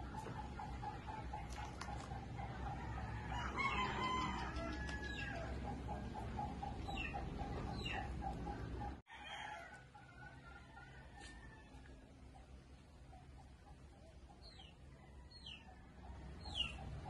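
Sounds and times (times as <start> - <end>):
rooster crowing: 2.8 - 5.6, 9.1 - 12.0.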